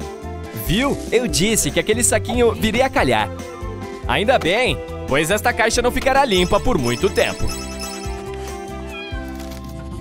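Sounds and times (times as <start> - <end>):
background music: 0.0 - 10.0
cat meowing: 8.6 - 9.5.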